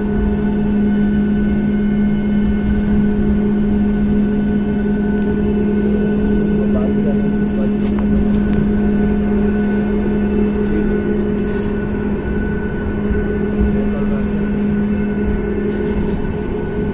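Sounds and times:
airliner cabin engine rumble: 0.0 - 16.9.

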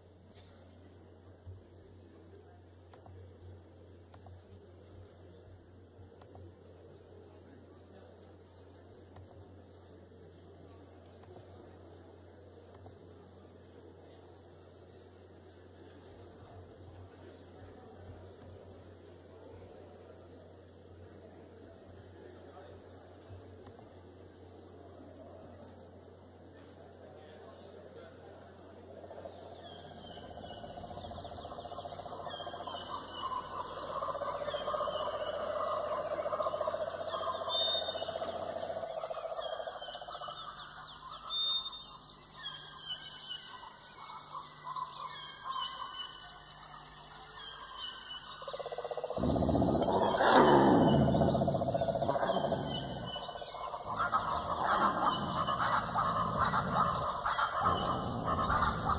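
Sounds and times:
animal call bending in pitch: 49.2 - 58.9.

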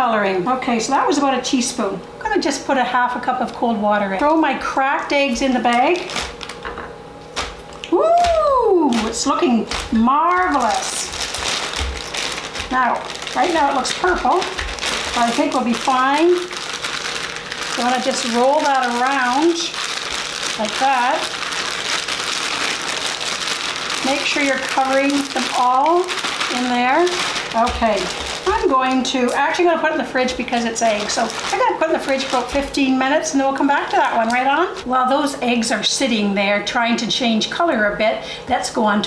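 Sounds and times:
plastic bag crinkling: 5.2 - 34.9
eggs knocking into bag: 9.0 - 12.8.

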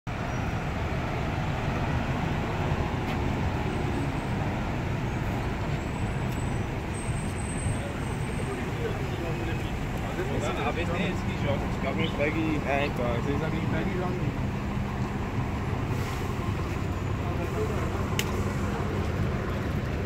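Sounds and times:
road traffic rumble: 0.1 - 20.0.

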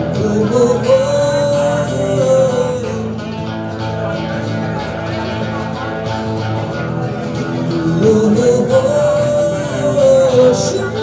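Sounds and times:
electric guitar: 0.0 - 11.0
live band instrumental music: 0.0 - 11.0.

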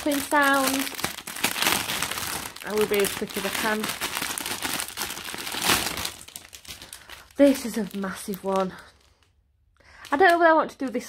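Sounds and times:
plastic bags crinkling: 0.0 - 9.3.

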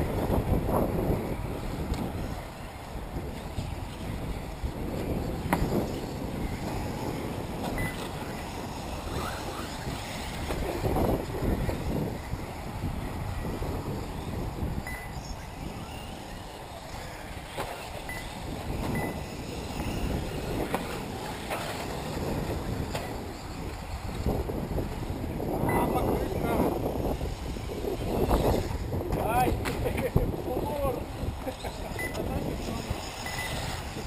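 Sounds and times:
wind buffeting microphone: 0.0 - 34.0
faint high beeps: 7.8 - 8.2, 14.8 - 15.4, 18.0 - 20.1, 25.6 - 26.0, 32.0 - 32.3, 33.2 - 33.7.

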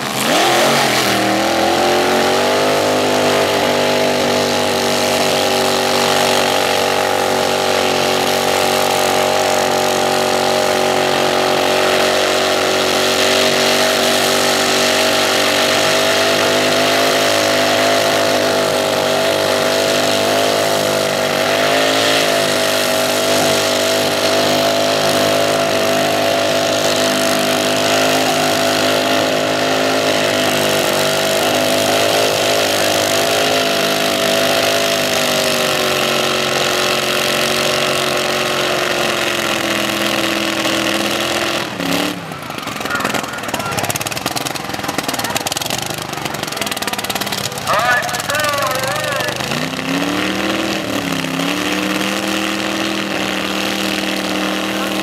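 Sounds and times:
dragster engine revving high: 0.0 - 55.0.

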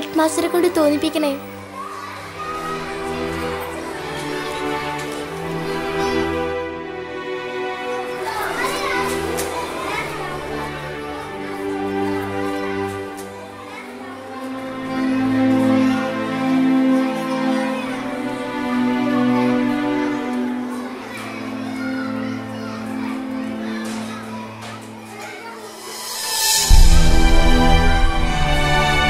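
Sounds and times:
children's voices chattering: 0.0 - 29.0
film music with sustained notes: 0.0 - 29.0.

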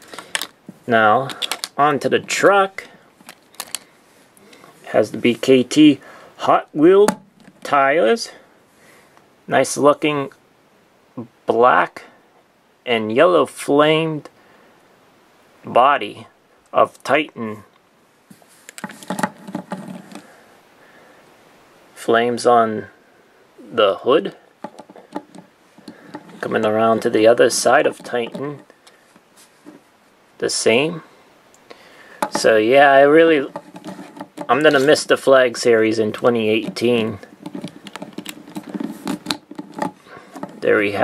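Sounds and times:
plastic clicks and taps: 24.6 - 26.4, 37.4 - 40.6.

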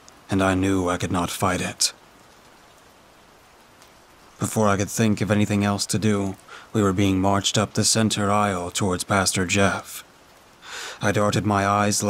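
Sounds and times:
rain patter: 0.0 - 12.0
narration: 0.3 - 2.0, 4.4 - 10.1, 10.7 - 12.0.

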